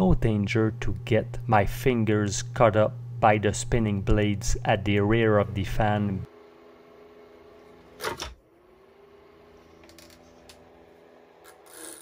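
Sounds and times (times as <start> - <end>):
faint steady hum: 0.0 - 8.0.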